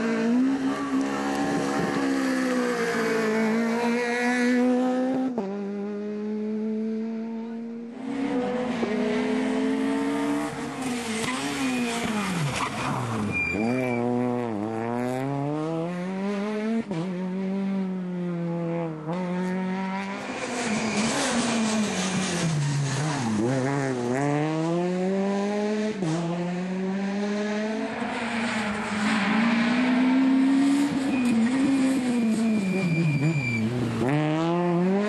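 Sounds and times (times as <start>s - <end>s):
rally car engine revving: 0.0s - 35.0s.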